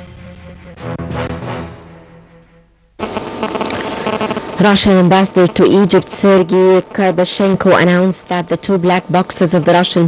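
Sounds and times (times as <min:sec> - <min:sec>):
theme music: 0:00.0 - 0:03.4
steady electrical buzz: 0:02.4 - 0:10.0.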